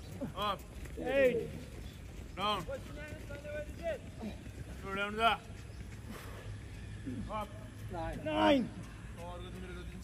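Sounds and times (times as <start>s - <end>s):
men shouting calls: 0.1s - 5.6s, 6.6s - 10.0s.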